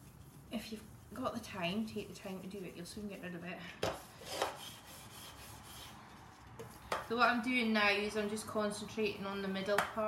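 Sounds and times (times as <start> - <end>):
plastic smoother rubbing on icing: 0.0 - 7.5.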